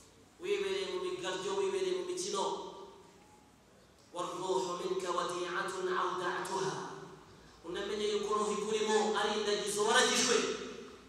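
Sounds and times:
man speaking: 0.4 - 2.7, 4.2 - 10.8.

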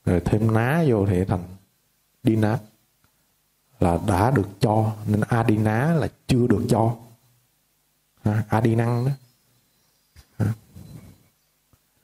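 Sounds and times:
faint click: 3.0 - 3.2
man's wordless vocal sound: 10.4 - 10.8.

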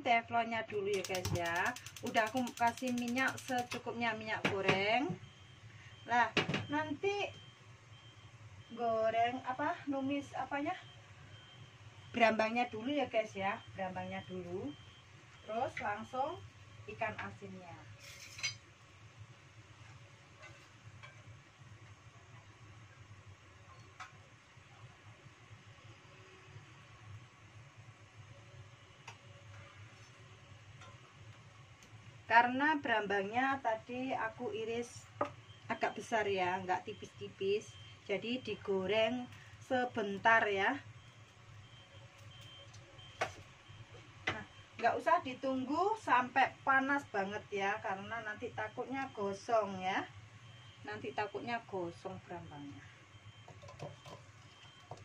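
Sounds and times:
gas stove burner running: 0.7 - 4.0
faint high beeps: 1.0 - 17.6, 34.8 - 55.0.

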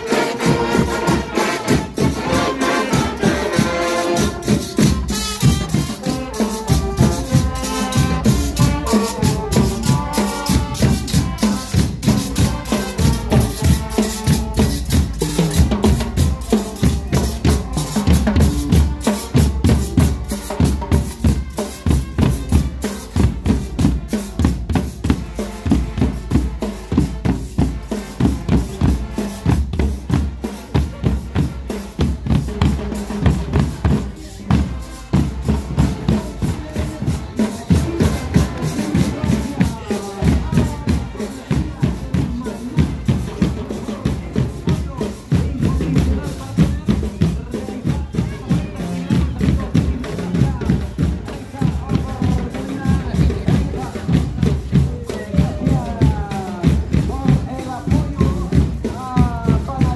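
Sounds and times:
brass playing: 0.0 - 44.8
marching drums: 0.0 - 59.9.

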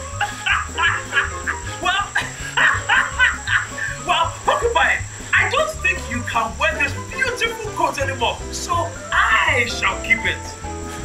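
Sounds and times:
cartoon character laughing: 0.0 - 4.4
background music with bass line: 0.0 - 11.0.

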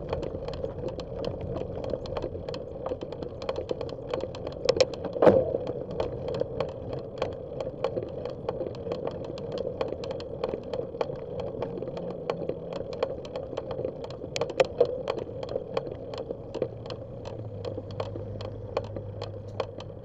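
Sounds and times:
bicycle clicks and rattles: 0.0 - 20.0.

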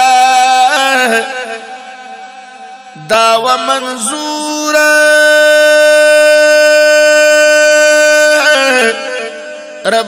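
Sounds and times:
man singing: 0.0 - 10.0.

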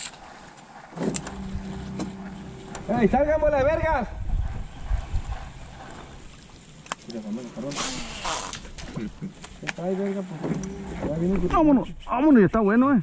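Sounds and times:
men talking quietly: 7.0 - 12.6.

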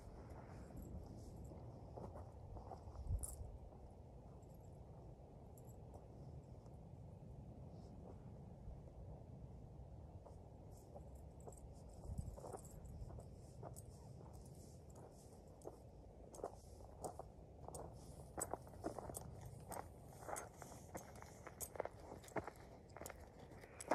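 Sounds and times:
footsteps crunching on gravel: 15.0 - 23.9.

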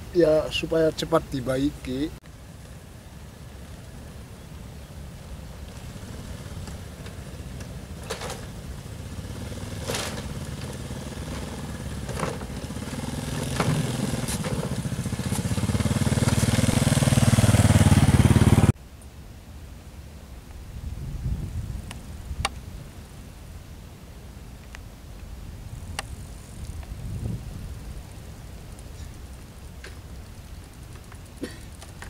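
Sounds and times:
small motorcycle engine running: 5.4 - 18.8.

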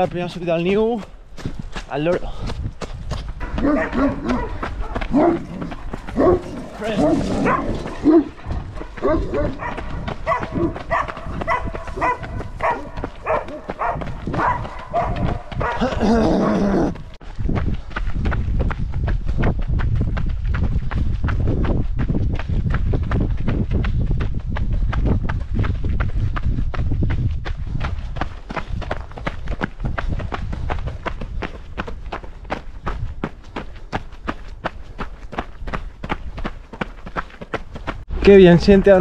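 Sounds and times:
running footsteps on gravel: 0.0 - 39.0.

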